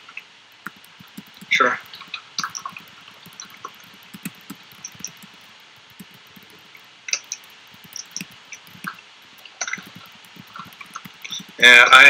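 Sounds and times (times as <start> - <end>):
keyboard and mouse clicking: 0.5 - 11.8.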